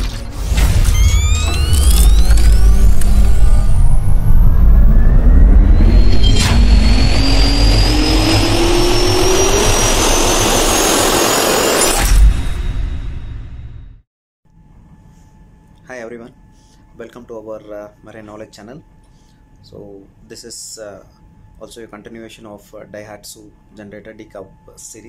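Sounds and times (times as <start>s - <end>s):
sharp hit: 0.0s - 14.0s
deep rumble with rising sweeps: 0.5s - 13.6s.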